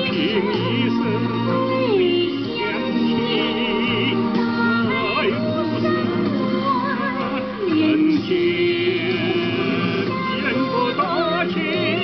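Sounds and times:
instrumental accompaniment: 0:00.0 - 0:12.0
woman singing with vibrato: 0:00.0 - 0:12.0.

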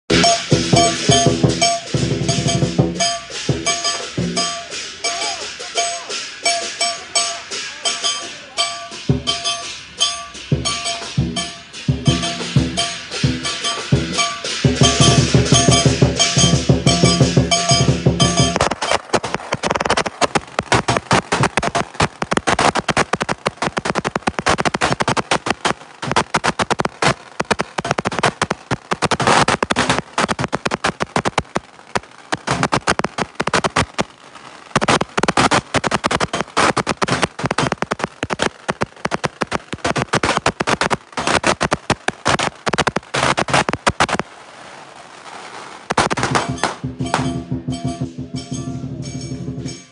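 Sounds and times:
drum and cymbals playing: 0:00.1 - 0:18.9, 0:46.0 - 0:49.9
firecrackers popping: 0:00.1 - 0:49.9.

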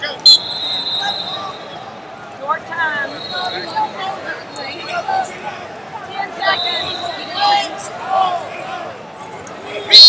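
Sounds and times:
sharp high whistle tone: 0:00.3 - 0:01.8.

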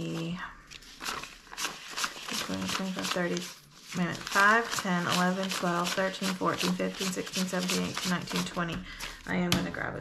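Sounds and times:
paper bills flicked by hand: 0:01.0 - 0:09.1.

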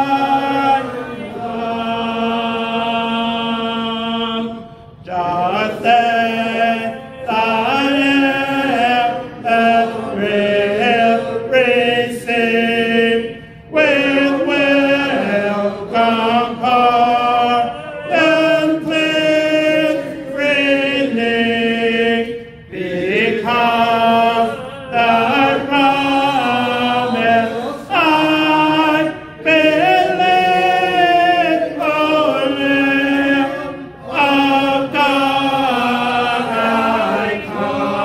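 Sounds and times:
man singing unaccompanied: 0:23.2 - 0:37.4.

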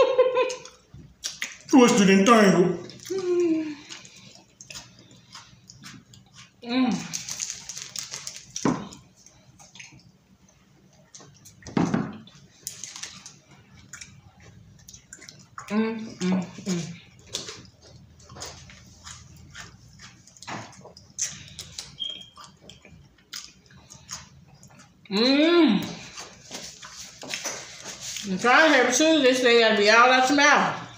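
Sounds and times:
people chewing sticky food: 0:00.2 - 0:28.9
wet mouth clicks and smacks: 0:00.5 - 0:01.7, 0:12.6 - 0:15.7, 0:19.0 - 0:24.9.

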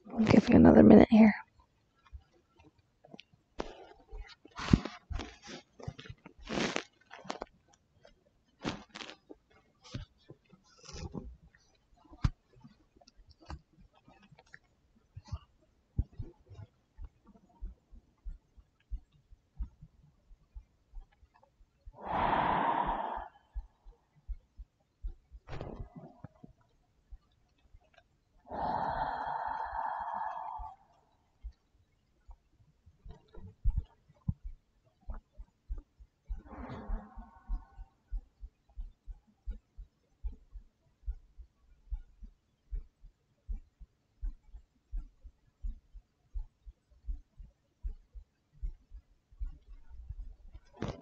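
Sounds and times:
fabric and cushions rustling: 0:04.5 - 0:07.4.

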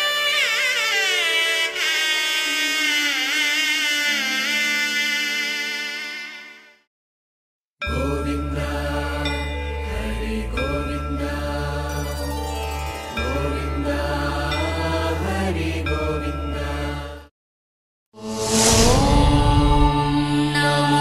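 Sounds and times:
chanted mantra singing: 0:07.8 - 0:12.4, 0:13.1 - 0:17.3, 0:19.0 - 0:21.0
steady deep drone: 0:18.2 - 0:21.0.

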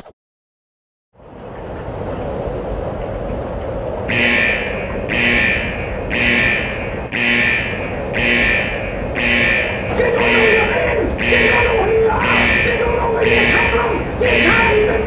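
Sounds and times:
steady low rumble: 0:01.2 - 0:15.0
alarm blaring in short blasts: 0:04.1 - 0:15.0.

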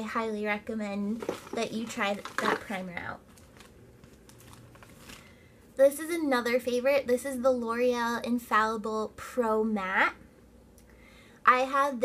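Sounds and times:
person speaking: 0:00.0 - 0:03.4
bottles and packaging clicking: 0:01.2 - 0:02.8.

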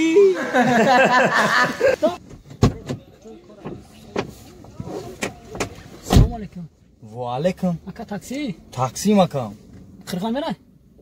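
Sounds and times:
men talking: 0:00.0 - 0:02.2.

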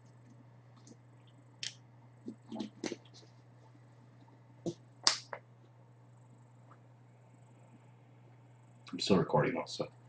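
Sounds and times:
steady low hum: 0:00.0 - 0:10.0
short sharp snaps: 0:05.0 - 0:05.4.

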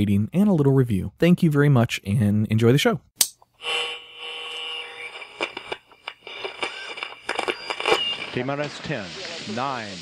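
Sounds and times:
faint static: 0:02.6 - 0:10.0
radio held tone: 0:03.6 - 0:10.0
crackly clicks and pops: 0:05.1 - 0:09.4.

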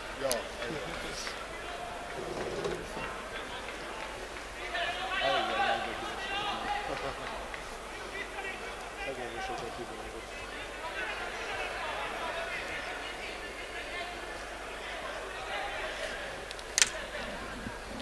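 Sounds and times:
players shouting: 0:00.6 - 0:17.6.

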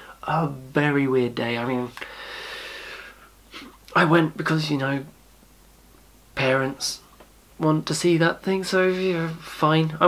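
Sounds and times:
man speaking: 0:00.2 - 0:02.0, 0:03.9 - 0:05.2, 0:06.3 - 0:10.0.

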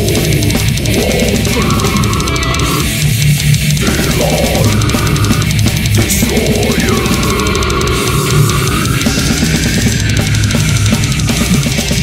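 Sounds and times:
blast-beat drumming: 0:00.0 - 0:12.0
heavily distorted guitars: 0:00.0 - 0:12.0.

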